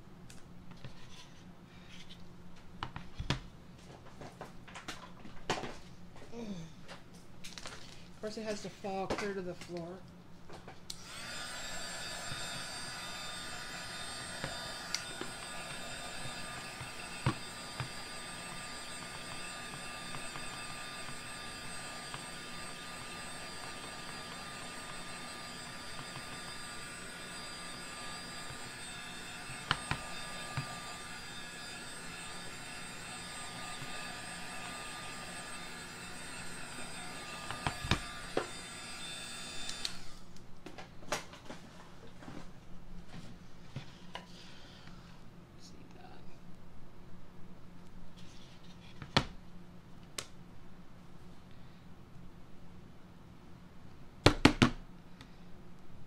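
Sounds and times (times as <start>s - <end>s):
heat gun whining: 10.9s - 40.4s.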